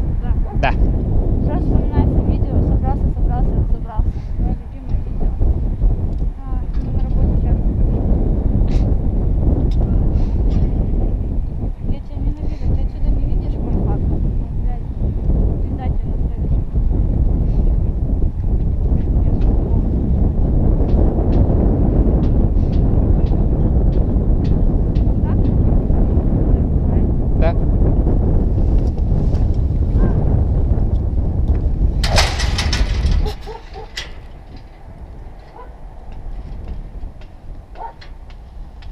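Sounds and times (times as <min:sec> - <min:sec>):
wind buffeting microphone: 0:00.0 - 0:38.9.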